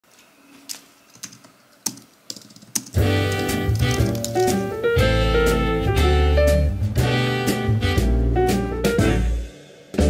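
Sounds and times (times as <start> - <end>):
typing on computer keyboard: 1.1 - 4.6.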